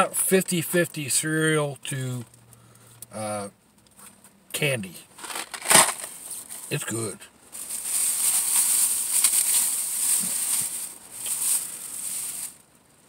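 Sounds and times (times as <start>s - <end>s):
plastic bag crinkling: 5.2s - 6.4s, 7.6s - 12.6s.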